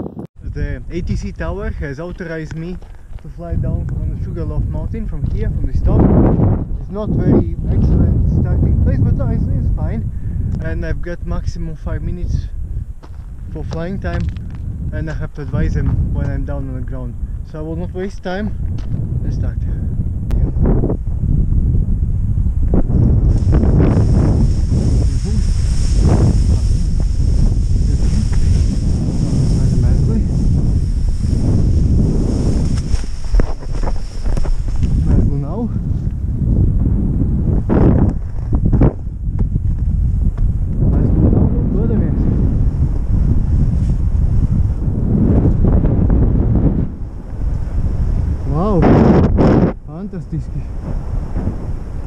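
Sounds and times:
wind buffeting microphone: 0.0 - 52.0
high hiss: 23.2 - 35.7.

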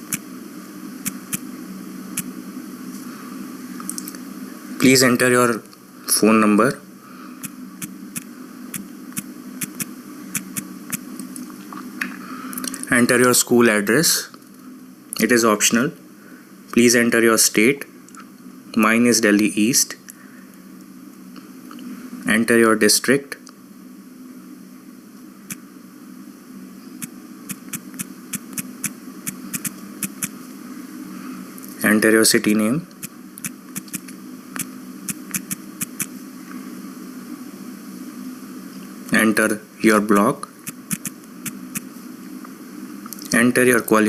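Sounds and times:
low electrical hum: 0.0 - 44.0.

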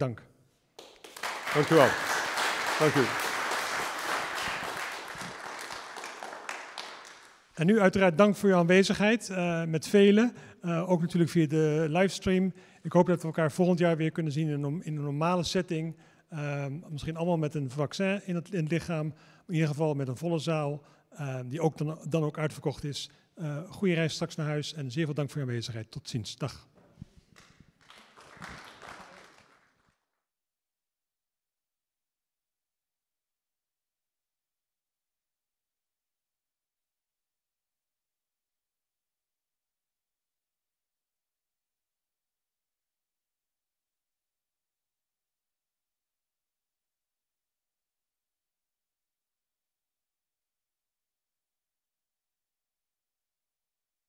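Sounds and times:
single claps: 0.8 - 7.4, 27.3 - 29.7
audience applause: 0.8 - 7.5, 27.4 - 30.0.

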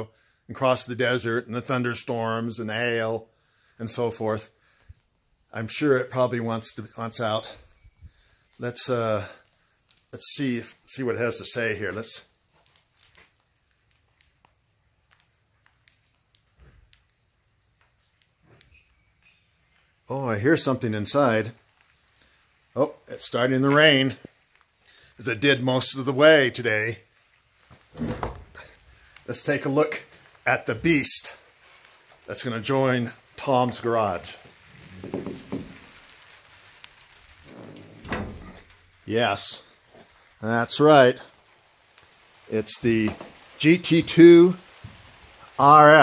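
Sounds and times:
light rain hiss: 0.0 - 46.0
faint clicks: 12.5 - 20.1, 41.3 - 43.6
soft low rustles: 26.4 - 45.6.

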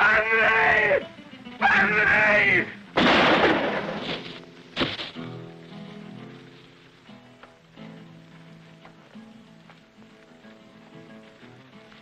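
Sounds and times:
man shouting: 0.0 - 1.0, 1.6 - 2.8
gunshots: 3.0 - 5.0.

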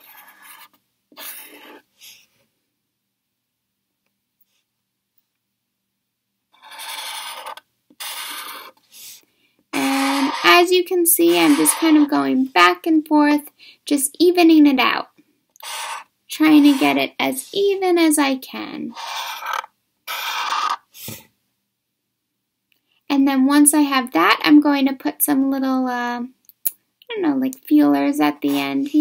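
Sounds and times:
marker drawn across paper: 0.0 - 2.3, 6.6 - 9.2, 9.8 - 12.4, 15.6 - 17.6, 18.9 - 21.2.

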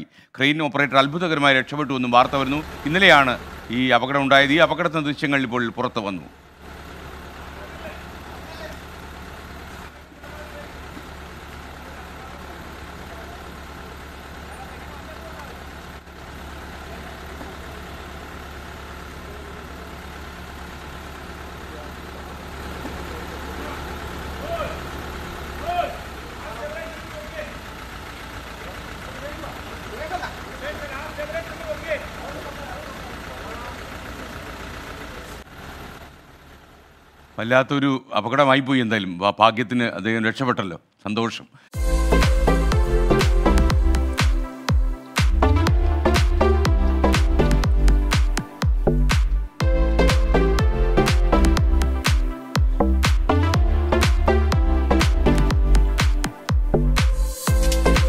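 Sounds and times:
crane engine running: 2.0 - 37.4, 41.8 - 58.0
people's voices: 9.8 - 13.8, 14.4 - 15.7, 21.6 - 35.4
loud shouts: 25.6 - 26.1.

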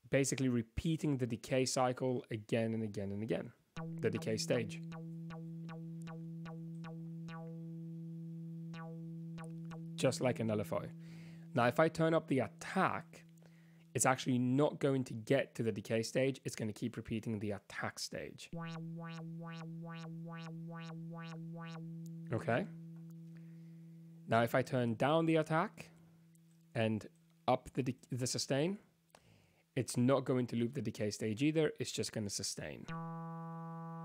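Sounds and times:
synthesizer note with filter sweep: 3.8 - 13.9, 18.6 - 24.7, 32.9 - 34.0.

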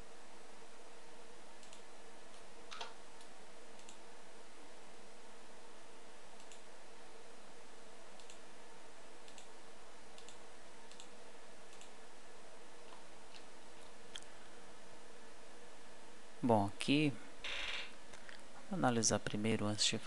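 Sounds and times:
faint hum: 0.0 - 20.0
computer mouse clicks: 1.6 - 4.0, 6.4 - 6.7, 8.2 - 8.4, 9.2 - 9.5, 10.2 - 12.0.

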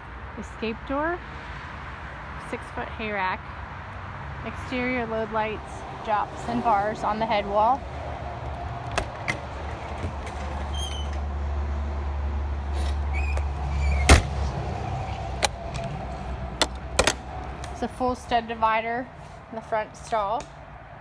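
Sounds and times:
metal latch clicks and clanks: 8.8 - 11.2, 16.6 - 17.3.

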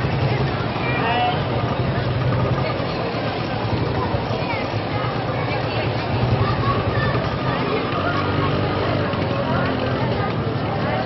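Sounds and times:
crowd chattering: 0.0 - 11.0
vehicle engines running: 0.0 - 11.0.

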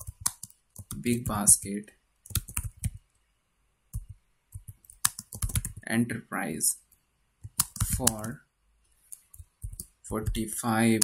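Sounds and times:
keyboard typing: 0.0 - 1.4, 2.2 - 3.0, 3.9 - 5.8, 7.4 - 8.4, 9.1 - 11.0.

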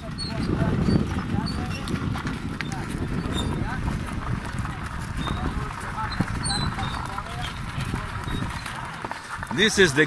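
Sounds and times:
cart wheels crunching over gravel: 0.0 - 10.0
donkey hooves clopping: 0.0 - 10.0
faint voices: 0.0 - 10.0.

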